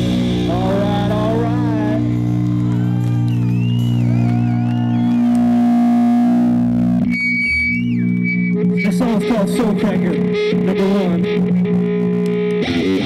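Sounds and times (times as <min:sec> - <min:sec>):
distorted electric guitar drone: 0:00.0 - 0:13.0
gliding high guitar notes: 0:00.0 - 0:13.0.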